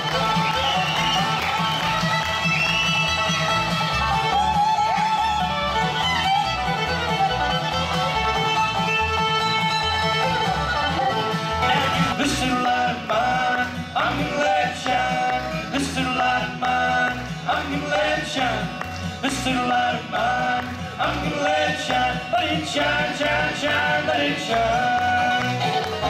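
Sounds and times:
acoustic guitar: 0.0s - 26.0s
banjo: 0.0s - 26.0s
fiddle melody: 0.0s - 26.0s
upright bass: 0.0s - 26.0s.

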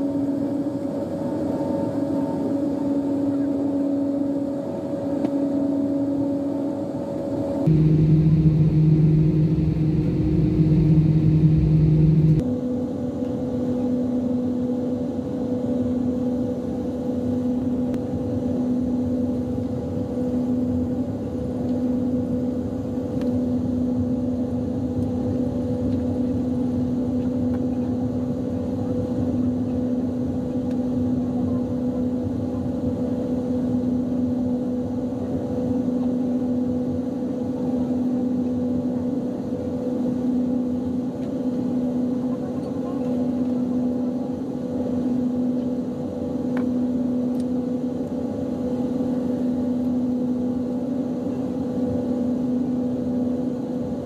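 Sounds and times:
jet engines humming in cabin: 0.0s - 54.0s.

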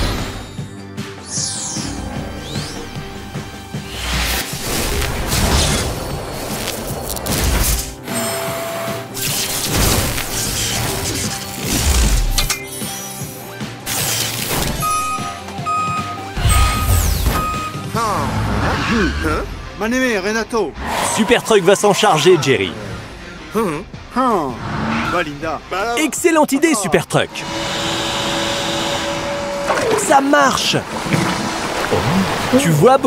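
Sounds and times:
cartoon soundtrack music: 0.0s - 27.8s
short beeps: 14.8s - 18.0s.

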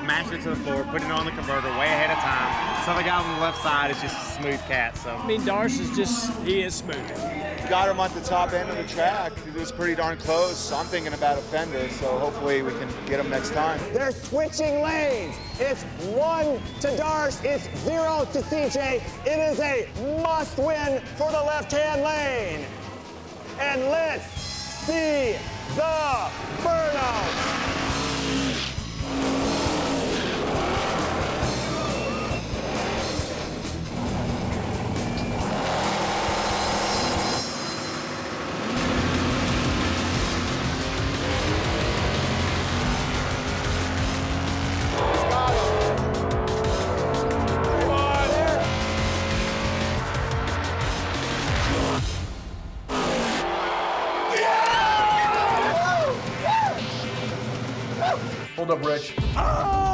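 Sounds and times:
music playing: 0.0s - 59.9s
tires squealing on pavement: 1.4s - 4.3s, 24.2s - 33.6s
car engine revving: 24.8s - 53.8s.

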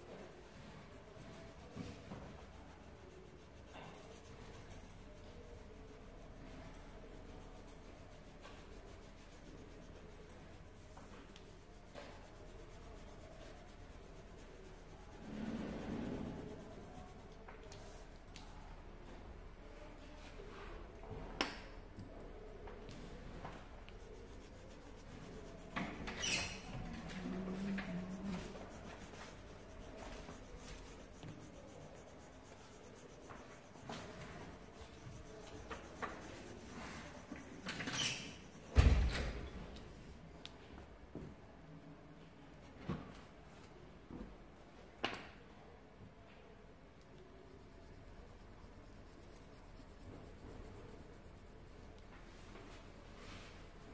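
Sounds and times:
coloured pencil scratching on paper: 0.0s - 19.2s, 22.0s - 39.8s, 47.1s - 53.9s.

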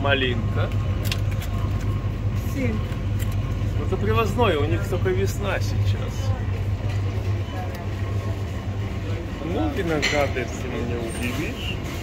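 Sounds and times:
refrigerator hum: 0.0s - 12.0s.

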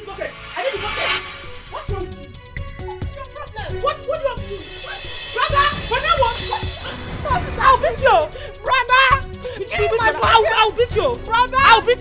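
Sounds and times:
background music: 0.0s - 12.0s
women yelling and shrieking: 3.7s - 12.0s.

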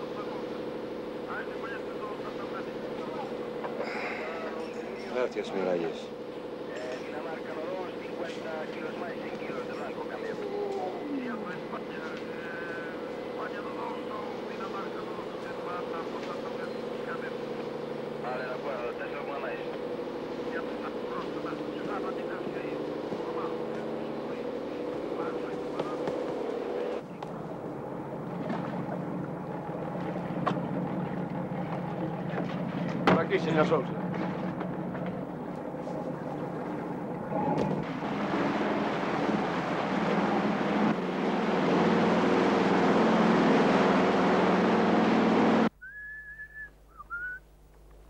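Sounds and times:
boat engine droning: 0.0s - 47.9s
lower hum: 0.0s - 48.0s.

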